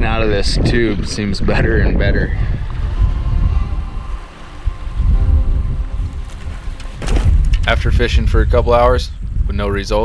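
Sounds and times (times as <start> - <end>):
faint background music: 0.0 - 10.0
wind buffeting microphone: 0.0 - 10.0.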